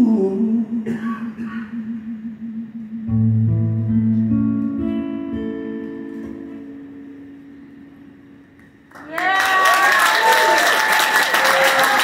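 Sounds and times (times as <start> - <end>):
man humming low note with vibrato: 0.0 - 7.4.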